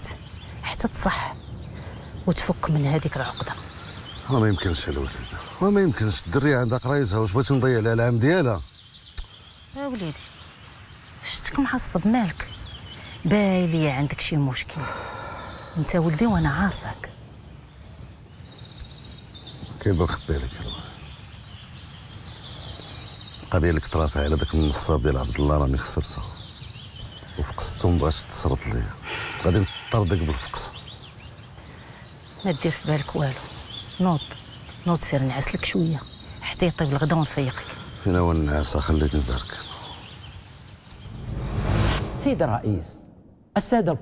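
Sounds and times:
low background hiss: 0.0 - 41.2
low outdoor background noise: 0.0 - 44.0
small birds chirping: 0.0 - 44.0
rising whoosh: 40.9 - 43.6.

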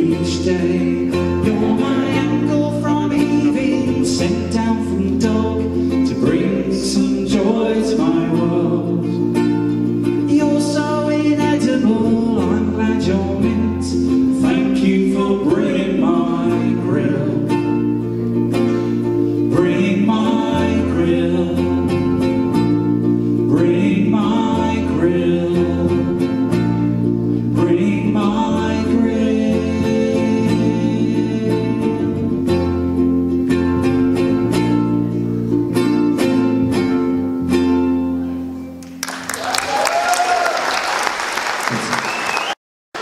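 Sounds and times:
person singing: 0.0 - 22.6, 23.4 - 32.6
electric bass guitar: 0.0 - 38.8
strummed ukulele: 0.0 - 39.2.

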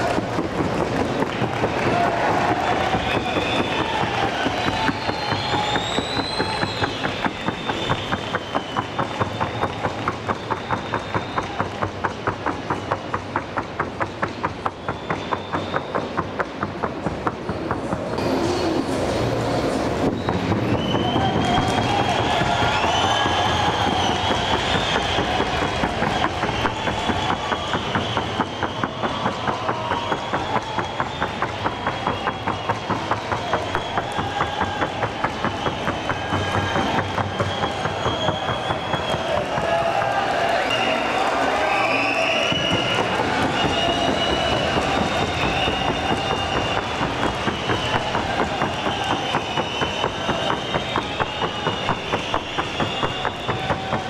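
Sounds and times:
horse hoofbeats on wooden board: 0.0 - 18.2, 20.0 - 40.6, 42.3 - 54.0.

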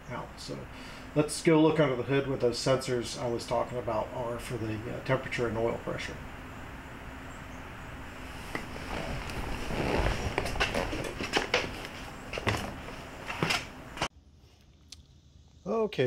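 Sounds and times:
rustling on a car seat: 8.1 - 13.7.

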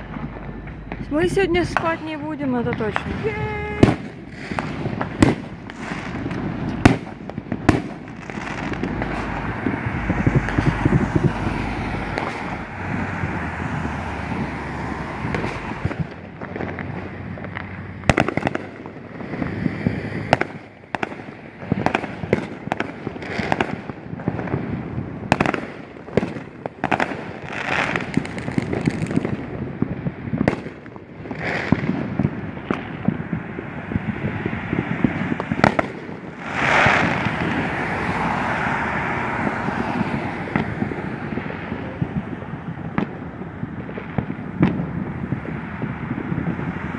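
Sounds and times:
background noise: 0.0 - 46.9
fireworks bangs and pops: 0.0 - 46.9.

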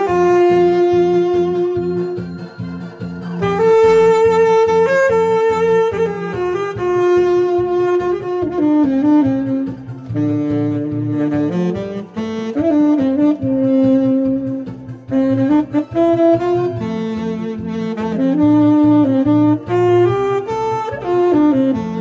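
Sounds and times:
disco backing track: 0.0 - 22.0
tenor saxophone melody: 0.0 - 22.0.

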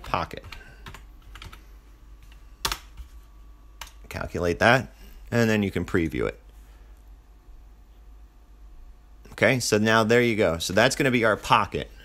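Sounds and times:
keyboard keys clicking: 0.4 - 1.6.

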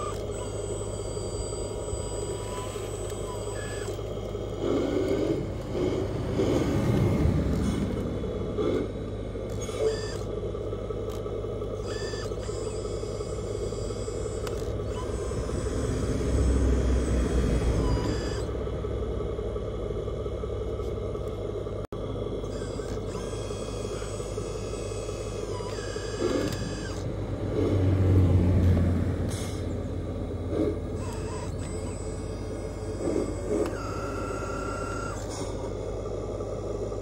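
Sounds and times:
high hydraulic whine: 0.0 - 37.0
low motor hum: 0.0 - 37.0.

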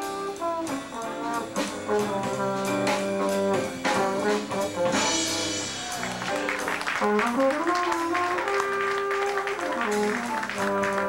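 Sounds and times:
brass horn line: 0.0 - 11.0
drums: 0.0 - 11.0
piano: 0.0 - 11.0
upright bass: 0.0 - 11.0.

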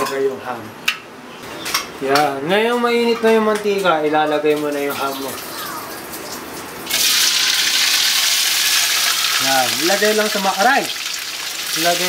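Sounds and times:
ham sizzling in hot oil: 5.0 - 12.0.

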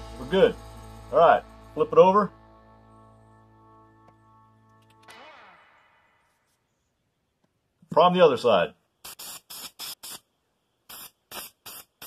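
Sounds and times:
aerosol can spraying: 9.0 - 10.3, 10.9 - 12.0.

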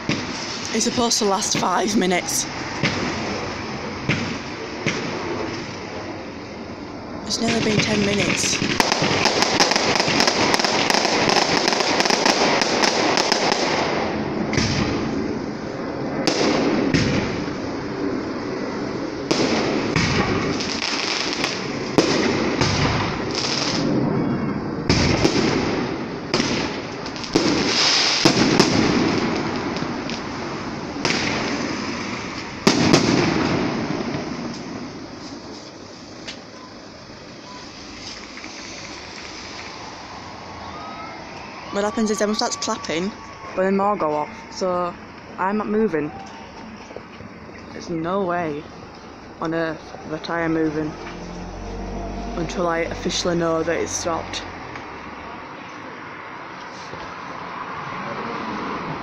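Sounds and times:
fireworks bangs: 0.0 - 55.1
fireworks crackling: 0.0 - 56.0.

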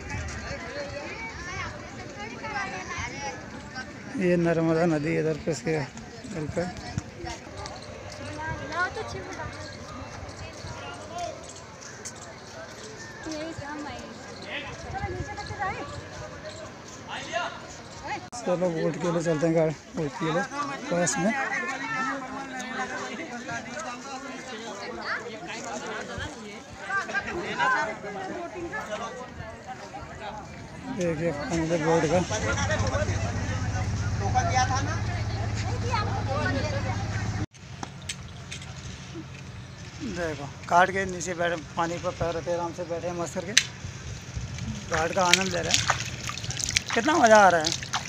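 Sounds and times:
people talking: 20.2 - 37.5, 44.6 - 47.8.

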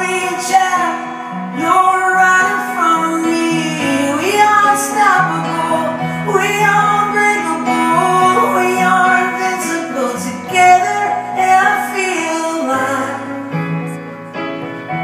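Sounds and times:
person singing: 0.0 - 14.2
acoustic guitar: 0.0 - 15.0
piano: 0.0 - 15.0.

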